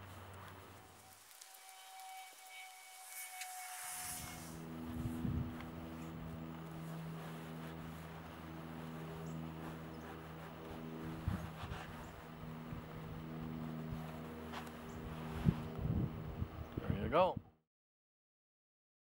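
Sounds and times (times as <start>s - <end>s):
motor humming: 0.0s - 16.6s.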